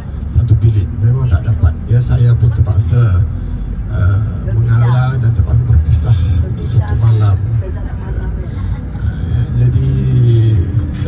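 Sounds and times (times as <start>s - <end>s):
bus engine and road noise: 0.0s - 11.0s
man speaking over loudspeaker: 0.3s - 3.3s, 3.9s - 7.6s, 9.0s - 11.0s.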